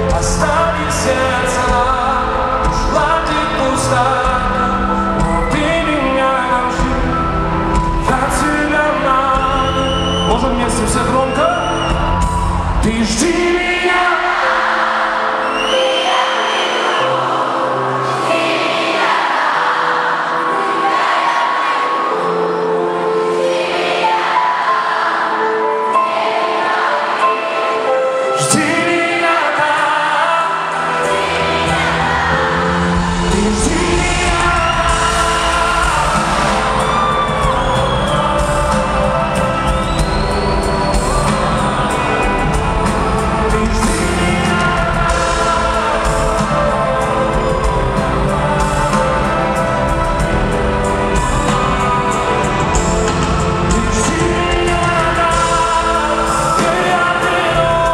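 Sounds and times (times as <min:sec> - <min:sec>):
audience singing along: 0:00.0 - 0:57.9
live pop music with singing: 0:00.0 - 0:57.9.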